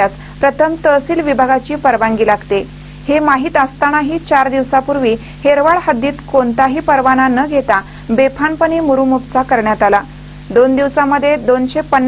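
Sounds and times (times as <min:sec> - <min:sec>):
faint low hum: 0:00.0 - 0:12.0
narrator talking: 0:00.0 - 0:12.0.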